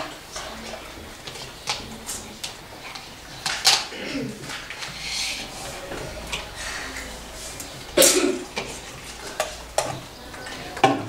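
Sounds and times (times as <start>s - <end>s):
tableware clattering: 2.8s - 11.0s
tableware scraping: 3.4s - 11.0s
cutlery tapping dishes: 5.9s - 11.0s.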